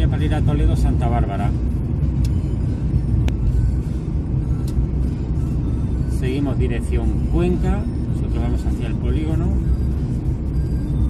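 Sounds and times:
car engine and tyres rumble: 0.0 - 11.0.

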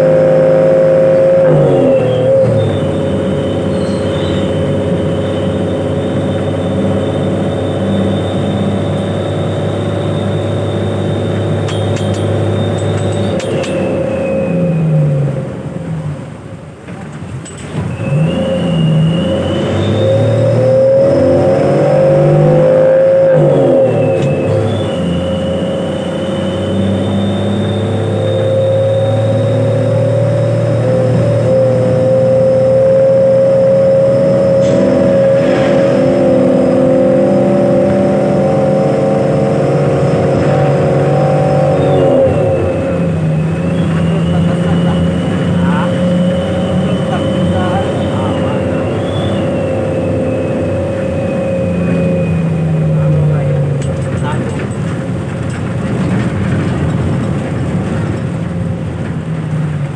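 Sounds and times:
bus diesel engine running: 0.0 - 59.9.

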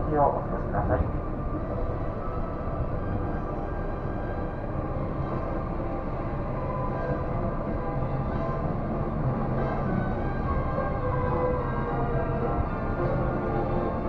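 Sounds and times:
monorail car running noise: 0.0 - 14.0
music: 0.0 - 14.0.

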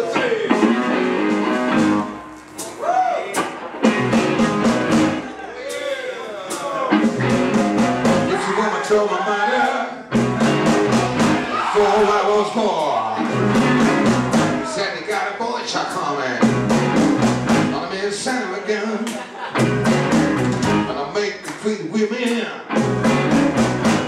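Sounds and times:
electric guitars: 0.0 - 2.7, 3.4 - 5.6, 6.8 - 9.0, 10.1 - 14.8, 16.4 - 17.9, 19.2 - 21.2, 22.7 - 24.0
drums: 0.0 - 18.5, 19.1 - 24.0.

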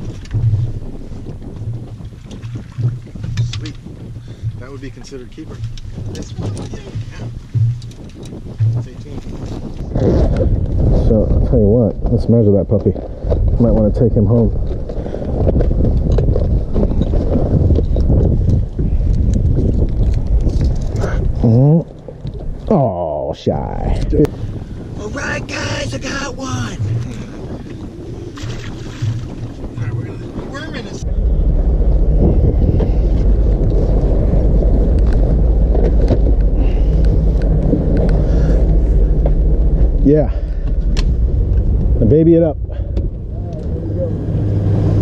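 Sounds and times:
motorboat engine rumble: 0.0 - 45.0
wind buffeting microphone: 0.0 - 45.0
sharp knocks: 0.3 - 0.9, 1.6 - 9.8
person's voice: 25.0 - 27.5.

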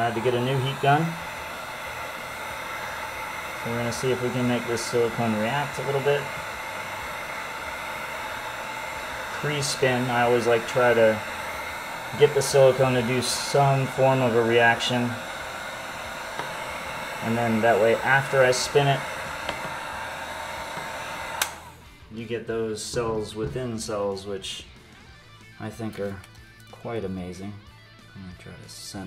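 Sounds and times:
heat gun blowing hot air: 0.0 - 22.0.

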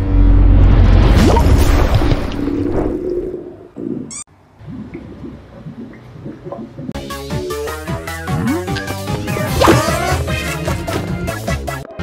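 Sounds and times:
soft low blips and squiggles: 2.8 - 7.0.

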